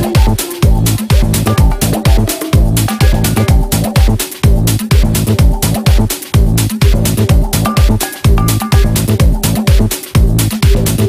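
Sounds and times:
house music: 0.0 - 11.0.

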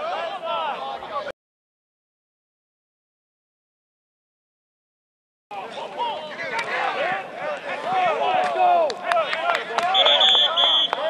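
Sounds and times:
players shouting: 0.0 - 1.3, 5.5 - 11.0
whistle blowing: 9.9 - 11.0.

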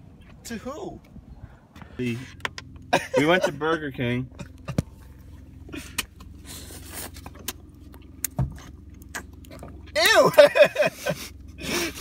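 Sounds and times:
car cabin rumble: 0.0 - 12.0
faint steady hum: 0.0 - 12.0.

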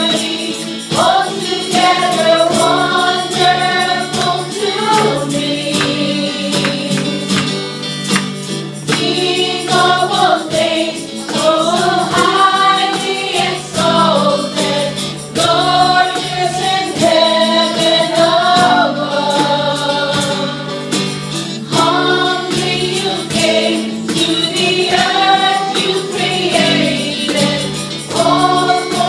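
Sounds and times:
women singing together: 0.0 - 7.6, 8.9 - 21.0, 21.6 - 29.0
acoustic guitars: 0.0 - 29.0
keyboard: 0.0 - 29.0
light percussion beat: 0.0 - 29.0.

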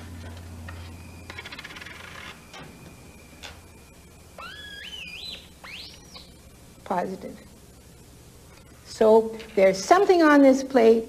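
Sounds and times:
rising electronic whistle tone: 2.5 - 6.4.

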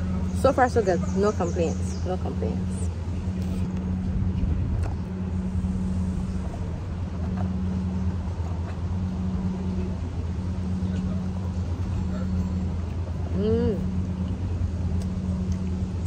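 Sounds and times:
low mechanical hum: 0.0 - 16.0.

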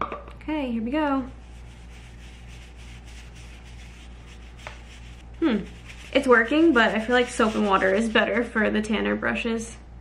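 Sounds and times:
brush scrubbing on paper towel: 1.3 - 8.4.

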